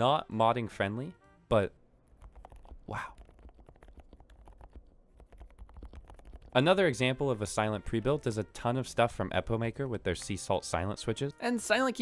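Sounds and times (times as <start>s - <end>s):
soft mechanical keyboard typing: 2.1s - 6.8s.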